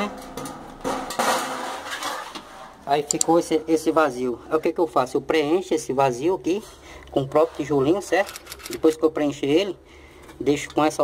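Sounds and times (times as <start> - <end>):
metal drawer scraping: 0.1 - 2.8.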